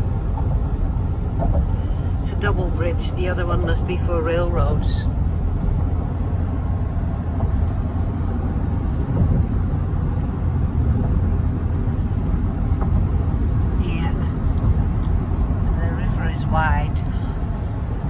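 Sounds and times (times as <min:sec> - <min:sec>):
car road rumble inside cabin: 0:00.0 - 0:18.0.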